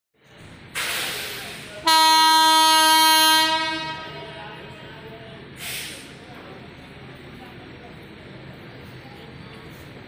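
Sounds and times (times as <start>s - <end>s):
locomotive horn blast: 1.8s - 4.4s.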